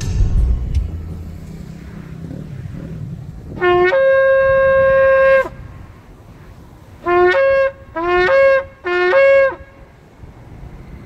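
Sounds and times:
shofar blast: 0:03.5 - 0:05.7, 0:07.0 - 0:09.8.

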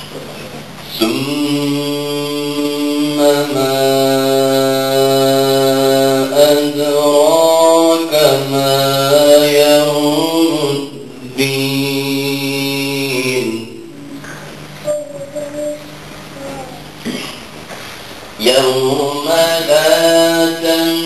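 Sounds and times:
man reciting melodically: 0:00.8 - 0:14.2, 0:18.4 - 0:21.0.

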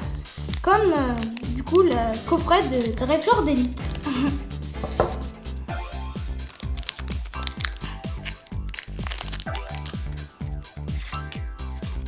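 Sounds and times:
background music with beat: 0:00.0 - 0:12.0
cards being handled: 0:00.1 - 0:05.3, 0:06.0 - 0:12.0
foil wrapper crinkling: 0:00.2 - 0:04.3, 0:06.0 - 0:12.0.

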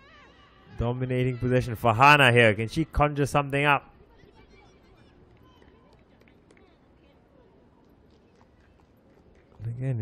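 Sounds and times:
faint distant voices calling: 0:00.0 - 0:10.0.

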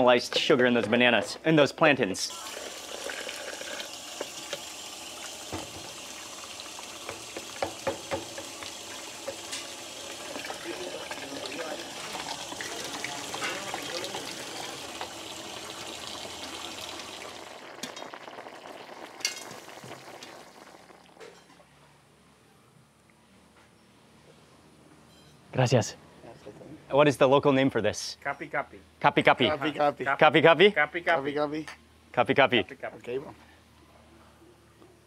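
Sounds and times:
tap water running into pitcher: 0:02.3 - 0:21.2
spoon knocking against pitcher: 0:07.0 - 0:08.5.

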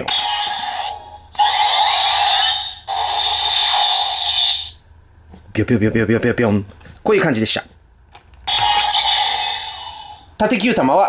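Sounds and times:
toy electronic sound effect: 0:00.0 - 0:04.8, 0:08.5 - 0:10.3.

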